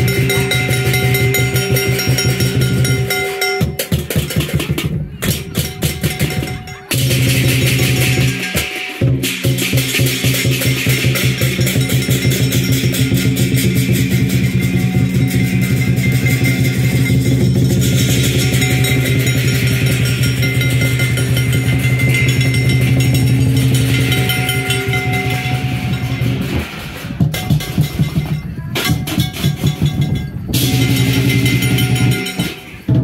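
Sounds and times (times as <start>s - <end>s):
gong: 0.0s - 3.9s, 5.6s - 28.4s, 29.1s - 33.0s
cymbals: 0.0s - 33.0s
drum beating fast rhythm: 0.0s - 33.0s.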